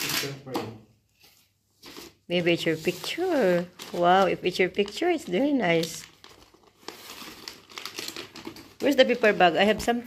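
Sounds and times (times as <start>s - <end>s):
wrapping paper crinkling: 1.8s - 10.0s.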